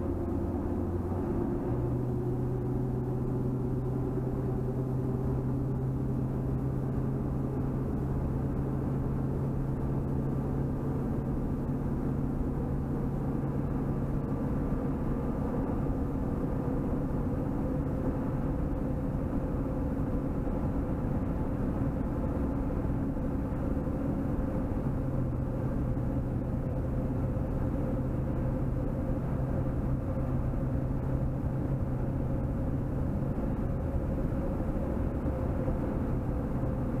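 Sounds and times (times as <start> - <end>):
car road and engine noise: 0.0 - 37.0
low drone: 0.0 - 37.0.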